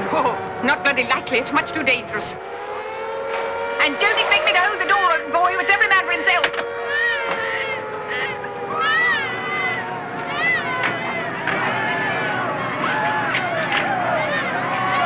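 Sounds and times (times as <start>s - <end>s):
air-raid siren: 0.0s - 15.0s
high rising-and-falling cries: 0.0s - 15.0s
people shouting: 0.0s - 15.0s.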